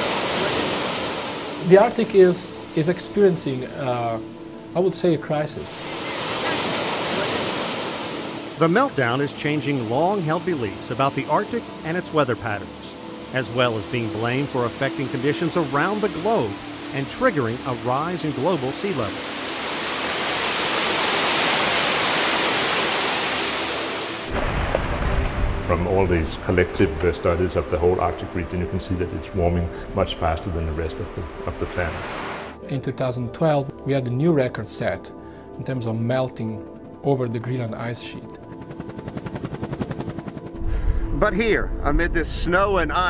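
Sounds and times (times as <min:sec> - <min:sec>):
floodwater rushing: 0:00.0 - 0:02.8, 0:05.6 - 0:32.6
loud low rumble: 0:24.3 - 0:27.4
helicopter rotor chop: 0:36.6 - 0:40.6.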